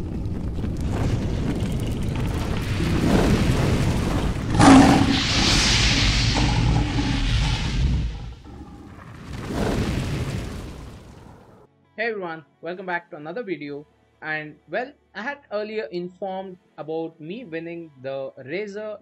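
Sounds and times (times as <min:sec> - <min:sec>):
deep rumble: 0:00.0 - 0:11.6
hissing fiery whoosh: 0:00.7 - 0:11.5
loud boom: 0:02.6 - 0:11.1.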